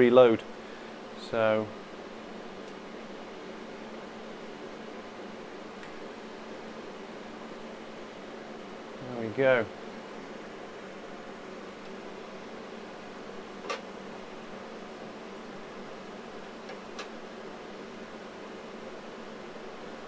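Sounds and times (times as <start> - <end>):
electronic equipment fan hum: 0.0 - 20.0.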